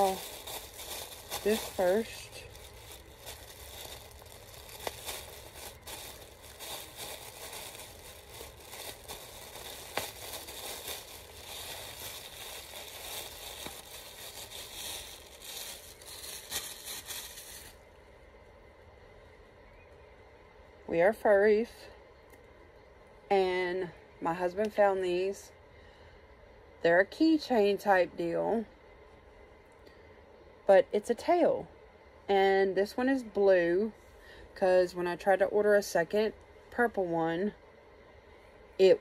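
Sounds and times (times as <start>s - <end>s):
plastic packaging crinkling: 0.0s - 17.8s.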